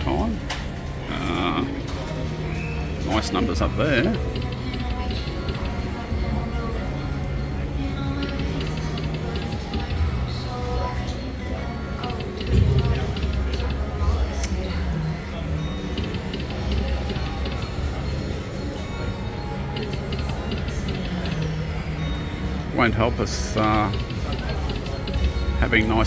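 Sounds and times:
low swell: 12.5 - 14.1.

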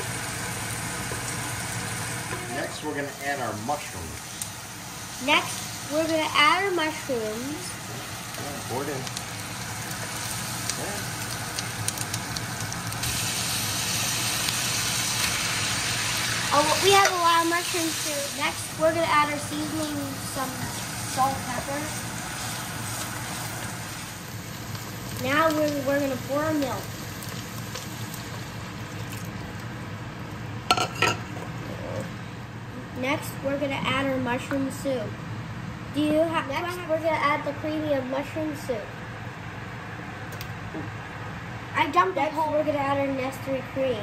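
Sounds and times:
food sizzling in a pot: 0.0 - 31.5.

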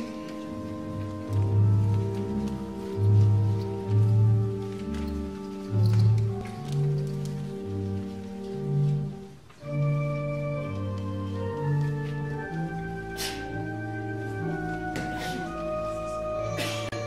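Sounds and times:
organ playing sustained chords: 0.0 - 17.0.

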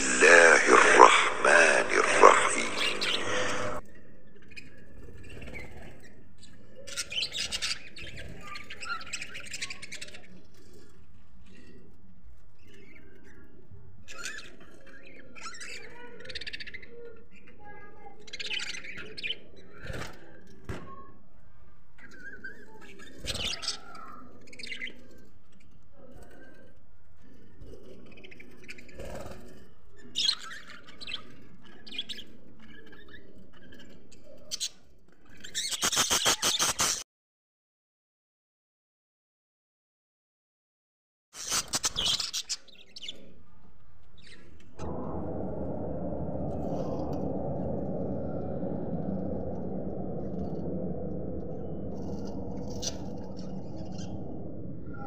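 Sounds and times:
loud bird calls: 0.0 - 3.8, 35.4 - 37.0
budgerigars chirping and chattering: 35.4 - 37.0, 41.4 - 43.2
nestlings squawking: 35.6 - 37.0.

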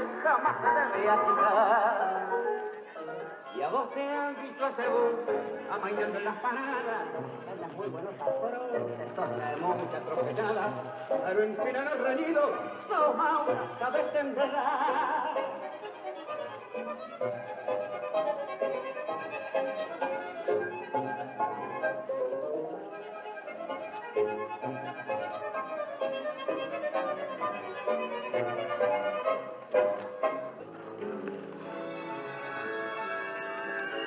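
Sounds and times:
person singing: 0.0 - 24.0
tango music with bandoneon: 0.0 - 34.0.

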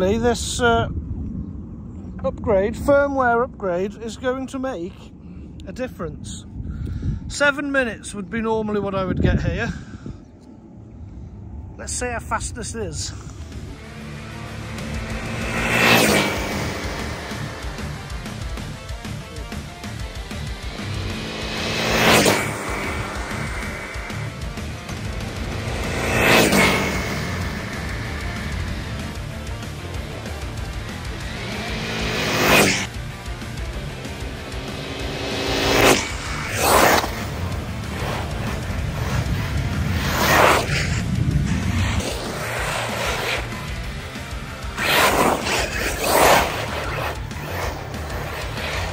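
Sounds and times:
rc car motor whining past: 13.5 - 48.9
background music: 13.6 - 41.2, 41.8 - 48.9.

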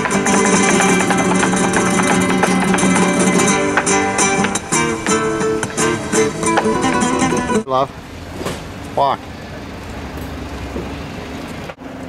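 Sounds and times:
flamenco acoustic guitar: 0.0 - 7.7.

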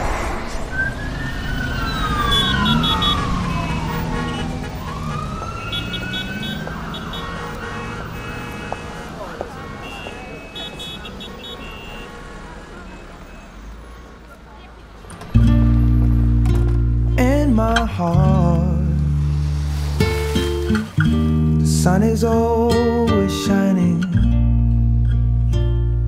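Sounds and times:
siren wailing: 0.0 - 13.7
traffic rumble: 0.0 - 23.4.

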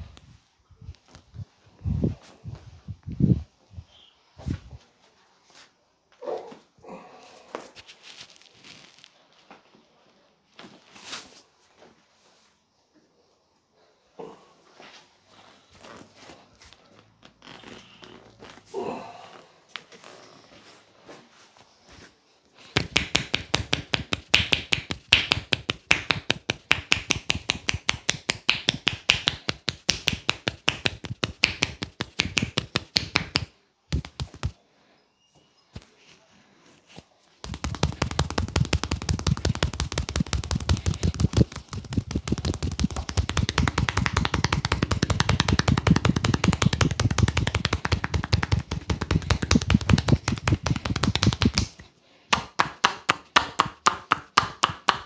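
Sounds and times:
hands slapping a bare back: 22.8 - 34.6, 37.4 - 55.0.

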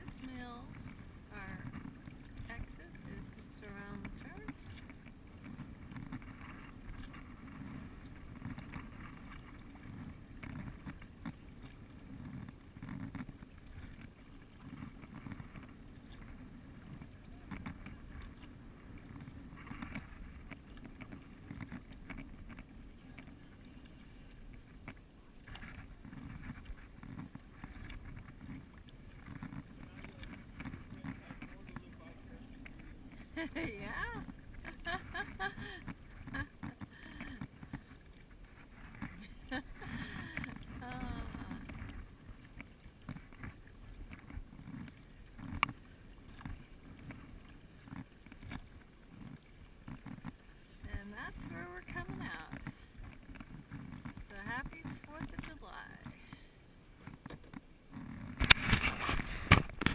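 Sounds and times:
wind on camera: 0.0 - 56.4, 57.0 - 59.9
water rushing: 0.0 - 56.5
paddle blades splashing: 0.0 - 59.9.

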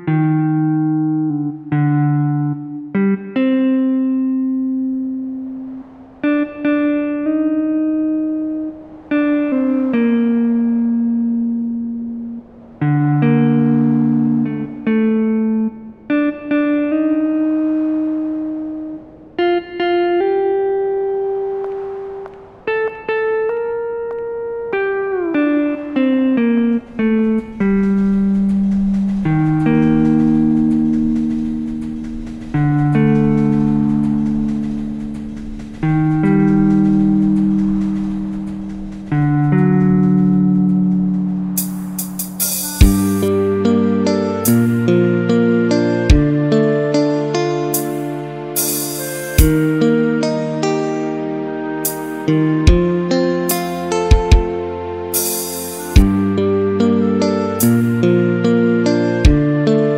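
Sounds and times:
steady high hiss: 0.0 - 59.9
instrumental karaoke backing track: 41.6 - 59.9.

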